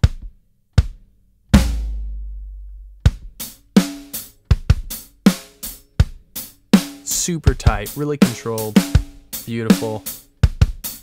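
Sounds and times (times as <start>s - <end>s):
drum kit beat: 0.0s - 11.0s
big drum hit with low boom: 1.6s - 3.4s.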